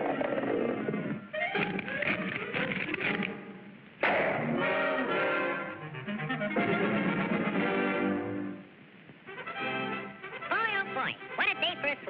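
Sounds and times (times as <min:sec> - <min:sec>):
orchestral music with brass: 0:04.4 - 0:08.7, 0:09.3 - 0:12.0.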